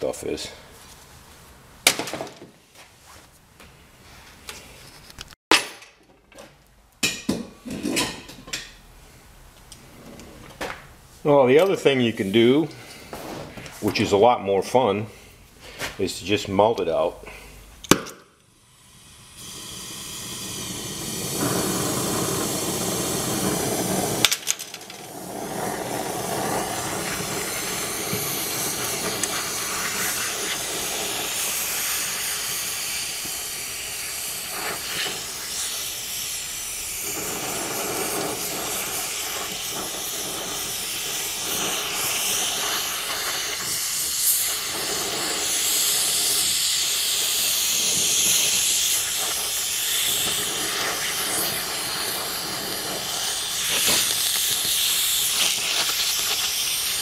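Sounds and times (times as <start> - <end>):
gas torch flame hissing: 15.9 - 57.0.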